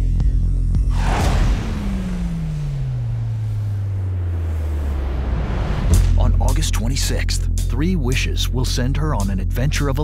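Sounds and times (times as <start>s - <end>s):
cinematic whoosh and rushing rumble: 0.8s - 6.8s
low tone sliding downward: 0.9s - 6.2s.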